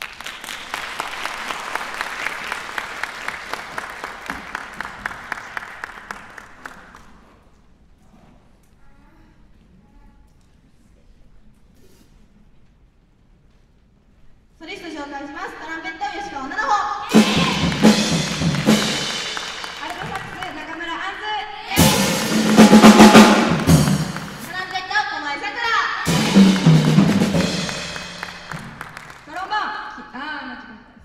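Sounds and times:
drum kit bursts: 0:17.1 - 0:20.6, 0:21.7 - 0:24.9, 0:26.0 - 0:29.2
cymbal crash ringing: 0:21.8 - 0:24.5, 0:26.1 - 0:28.5.

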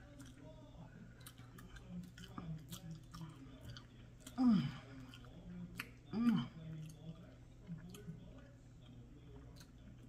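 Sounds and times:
chewing mouth clicks: 0:05.0 - 0:10.0.

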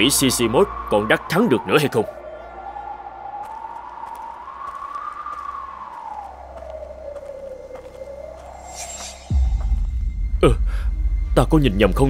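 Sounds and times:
eerie gliding tone: 0:00.0 - 0:11.7
low drone: 0:00.0 - 0:12.0.

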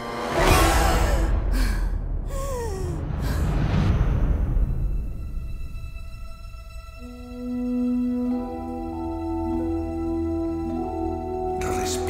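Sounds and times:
deep steady rumble: 0:00.6 - 0:07.4
woman gasping and breathing hard: 0:00.8 - 0:03.8.

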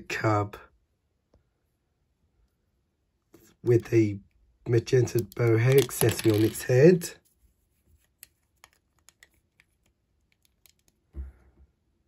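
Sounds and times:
plastic lego pieces clicking: 0:05.0 - 0:06.7.

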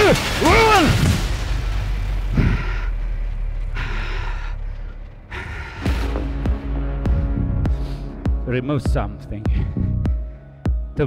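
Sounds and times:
man breathing heavily: 0:02.4 - 0:06.4, 0:09.5 - 0:10.9.

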